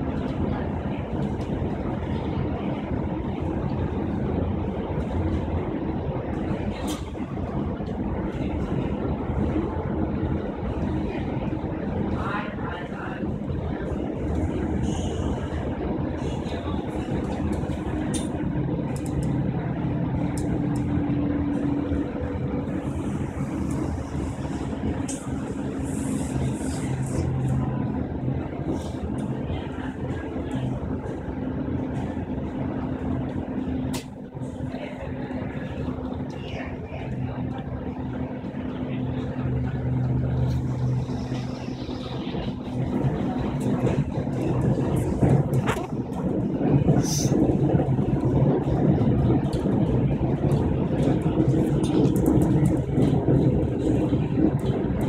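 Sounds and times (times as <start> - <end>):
train wheels rumbling on track: 0.0 - 55.0.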